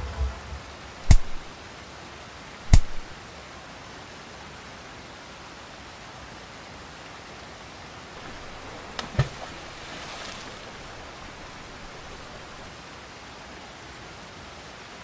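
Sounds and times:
sharp thuds of blows: 0:00.0 - 0:01.5, 0:02.7 - 0:03.1
steady hiss: 0:00.0 - 0:03.2, 0:08.1 - 0:12.9.

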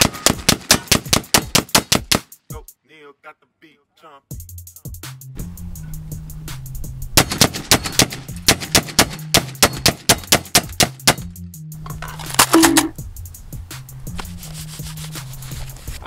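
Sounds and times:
rapid gunshots: 0:00.0 - 0:02.4, 0:07.2 - 0:11.2
hip hop music with bass line: 0:02.5 - 0:07.1.

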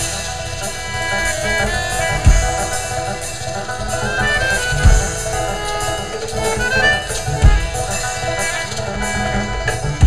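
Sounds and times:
banjo: 0:00.0 - 0:10.0
rock band playing: 0:00.0 - 0:10.0
kick drum hit: 0:02.2 - 0:02.6, 0:04.8 - 0:05.2, 0:07.4 - 0:07.8.

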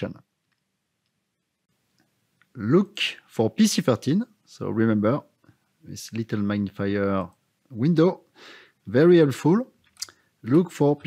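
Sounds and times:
man narrating: 0:00.0 - 0:00.2, 0:02.5 - 0:09.8, 0:10.4 - 0:11.0.

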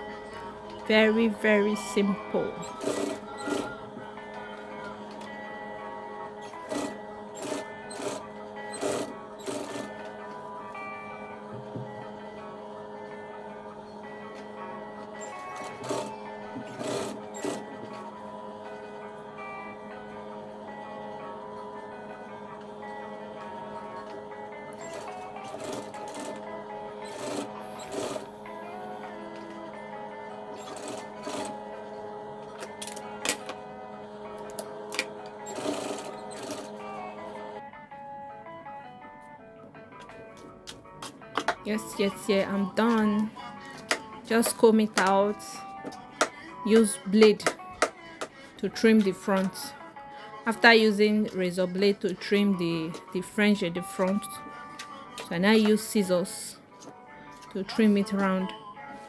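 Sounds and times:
background music with held tones: 0:00.0 - 0:59.0
sewing machine stitching: 0:02.6 - 0:03.8, 0:06.5 - 0:10.0, 0:15.2 - 0:18.0, 0:24.7 - 0:28.3, 0:30.5 - 0:31.6, 0:34.5 - 0:36.8.

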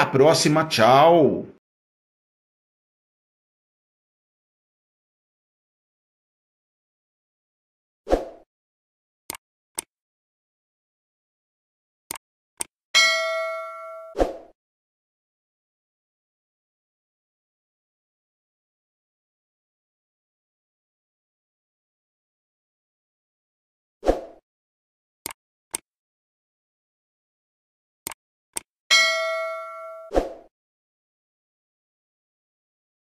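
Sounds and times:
bright bell ding: 0:13.0 - 0:14.2, 0:28.9 - 0:30.1.

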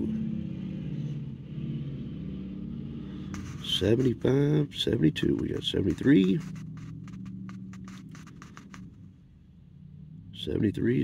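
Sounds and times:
low steady hum: 0:00.0 - 0:11.0
scratching lottery ticket: 0:03.3 - 0:09.0.

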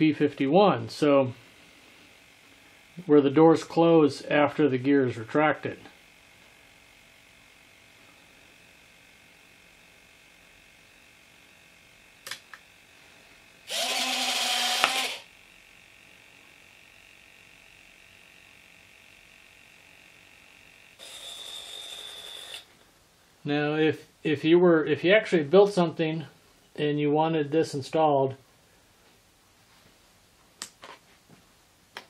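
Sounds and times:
servos buzzing with high whine: 0:00.0 - 0:22.8
electric landing gear whirring: 0:13.6 - 0:15.3, 0:21.0 - 0:22.7.

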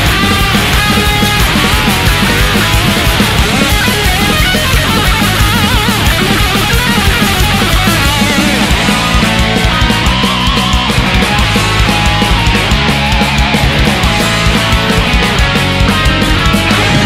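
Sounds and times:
distorted electric guitars: 0:00.0 - 0:17.0
fast drums: 0:00.0 - 0:17.0
high melodic lead guitar: 0:00.0 - 0:17.0.

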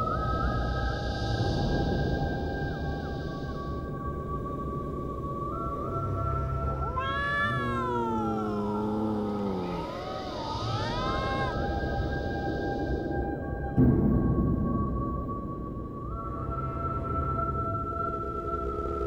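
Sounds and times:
eerie music of sustained tones: 0:00.0 - 0:19.0
cat meowing: 0:06.8 - 0:11.7.

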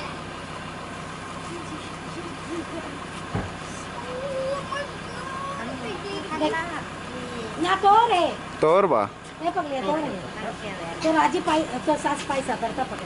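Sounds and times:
low mechanical hum: 0:00.0 - 0:13.0
faint voices: 0:01.3 - 0:08.6
thump: 0:03.3 - 0:03.6.

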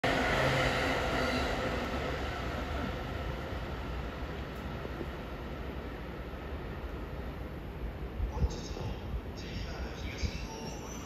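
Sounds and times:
train rolling rumble: 0:00.0 - 0:11.0.

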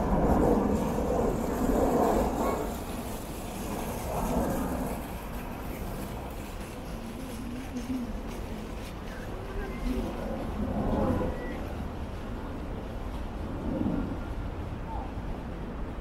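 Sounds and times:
pedestrians' voices: 0:00.0 - 0:16.0
steady low rumble: 0:00.0 - 0:16.0.

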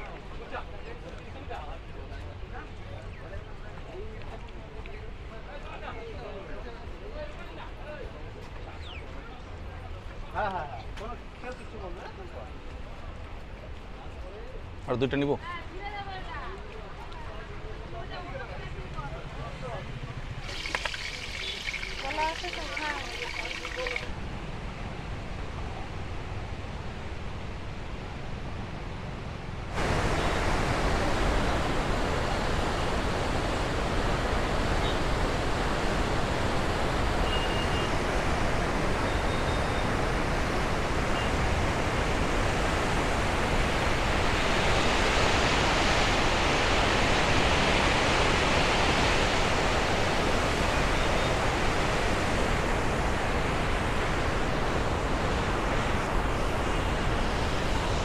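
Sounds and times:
river water rushing: 0:20.2 - 0:24.2, 0:29.7 - 0:58.0.

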